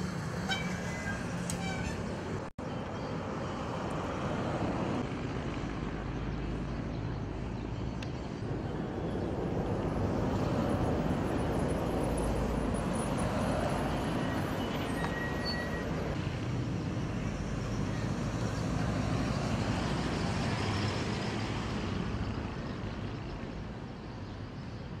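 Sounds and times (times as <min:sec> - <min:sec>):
road traffic passing: 0:00.0 - 0:25.0.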